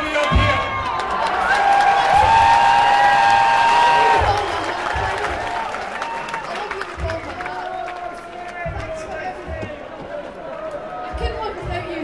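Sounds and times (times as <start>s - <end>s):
crowd cheering and applauding: 0.0s - 11.8s.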